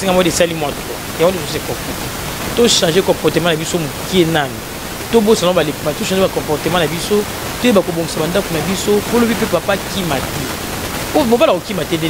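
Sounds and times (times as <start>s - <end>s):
person speaking: 0.0s - 12.0s
steady hiss: 0.0s - 12.0s.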